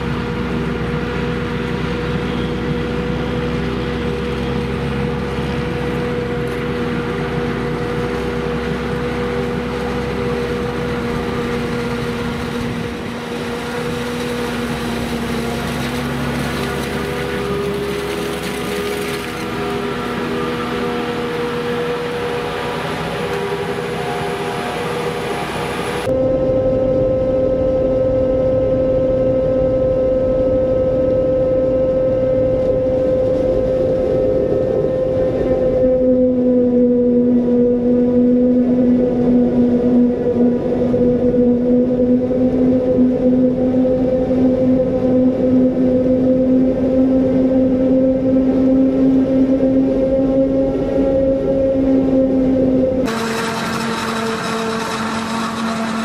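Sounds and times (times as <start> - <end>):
forage harvester chopping maize: 53.1 - 56.0.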